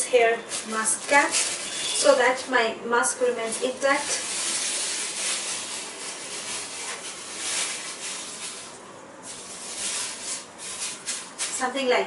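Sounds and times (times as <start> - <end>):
plastic hair cap crinkling: 0.4 - 2.0, 4.0 - 11.6.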